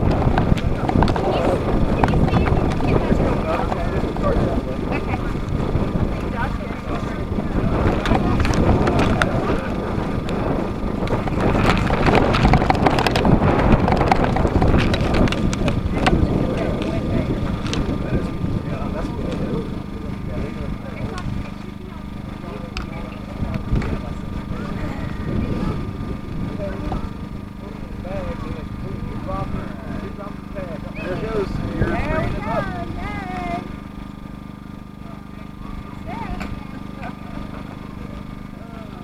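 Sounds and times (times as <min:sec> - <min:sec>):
people talking: 0:00.0 - 0:39.0
wind buffeting microphone: 0:00.0 - 0:39.0.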